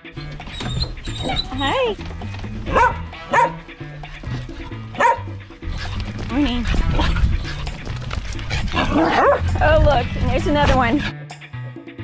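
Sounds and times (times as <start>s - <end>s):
background music with bass line: 0.0s - 12.0s
dog barking: 2.6s - 3.7s, 4.9s - 5.9s, 8.7s - 9.6s.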